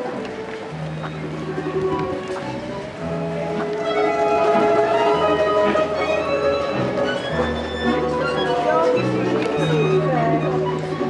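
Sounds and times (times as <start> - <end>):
balalaika ensemble playing: 0.0 - 11.0.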